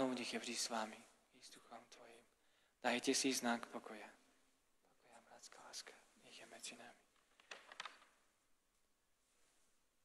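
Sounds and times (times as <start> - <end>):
person whispering: 4.8 - 7.2.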